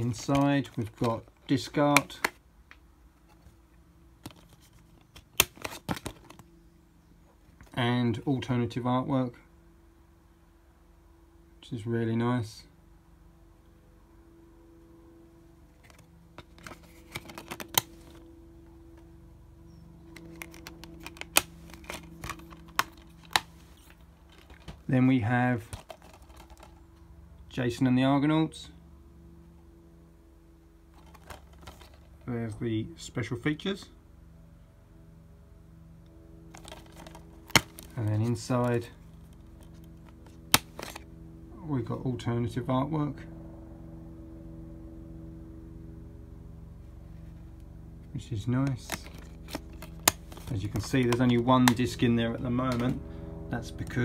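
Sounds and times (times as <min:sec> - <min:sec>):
steady low hum: 0:00.0 - 0:54.0
plastic disc case clicks: 0:04.2 - 0:06.4, 0:15.8 - 0:18.2, 0:20.1 - 0:24.8, 0:25.7 - 0:26.7, 0:31.0 - 0:32.0, 0:36.5 - 0:37.9, 0:39.6 - 0:41.0, 0:48.7 - 0:52.0, 0:52.7 - 0:53.0.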